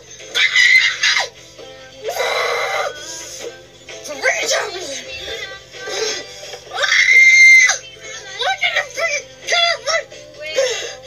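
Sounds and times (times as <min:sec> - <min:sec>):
background music: 0:00.0 - 0:11.0
girl screaming: 0:00.3 - 0:01.3, 0:02.1 - 0:03.0, 0:06.7 - 0:07.8.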